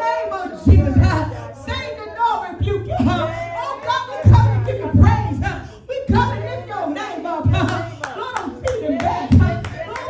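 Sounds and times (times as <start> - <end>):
woman speaking into a microphone: 0.0 - 9.9
rhythmic hand clapping: 4.3 - 6.4, 7.4 - 10.0.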